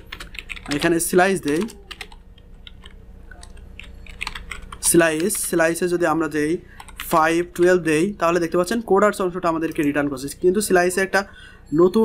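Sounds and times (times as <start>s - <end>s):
computer keyboard keystrokes: 0.0s - 5.8s, 6.8s - 7.8s
steady low hum: 0.0s - 12.0s.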